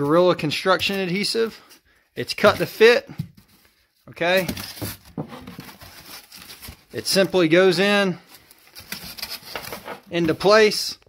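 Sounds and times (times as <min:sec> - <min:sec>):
foam boards rustling and rubbing: 0:02.4 - 0:07.6, 0:08.3 - 0:10.7.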